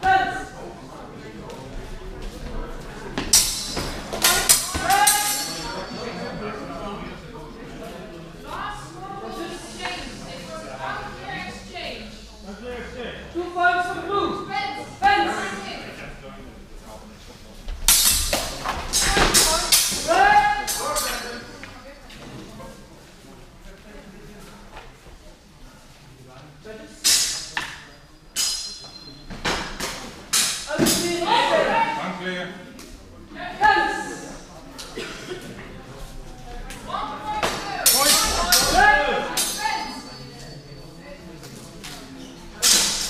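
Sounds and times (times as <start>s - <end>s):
steel swords clashing: 3.3s - 6.1s, 17.9s - 21.6s, 27.0s - 31.2s, 37.5s - 40.2s, 42.6s - 43.0s
people shouting: 4.3s - 5.6s, 19.0s - 21.2s.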